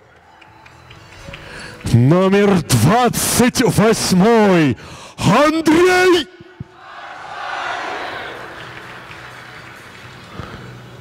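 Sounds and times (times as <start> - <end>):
audience applauding: 7.5 - 10.8.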